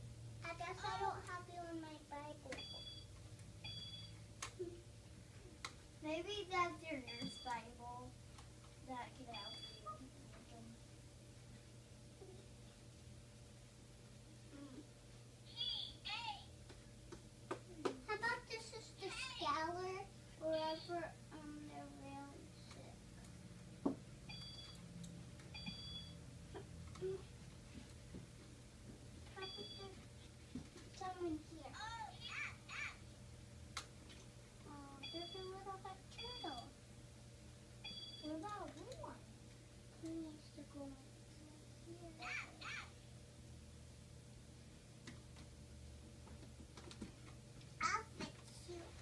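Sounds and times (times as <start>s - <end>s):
toy laptop two-tone beep: 3.7s - 4.1s, 9.3s - 9.9s, 37.9s - 38.3s.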